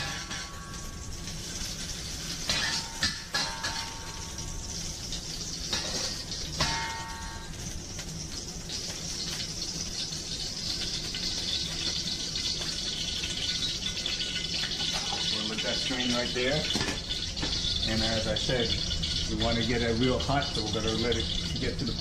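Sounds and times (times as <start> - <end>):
oil sizzling in a wok: 0.0 - 22.0.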